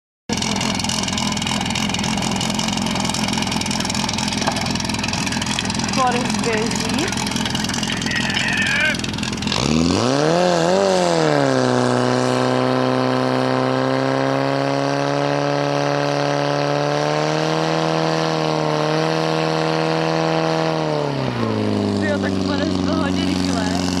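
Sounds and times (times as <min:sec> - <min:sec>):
pump engine revving: 0:00.3 - 0:24.0.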